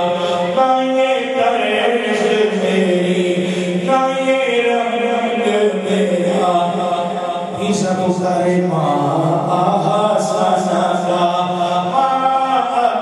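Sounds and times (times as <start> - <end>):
man singing unaccompanied: 0.0 - 13.0.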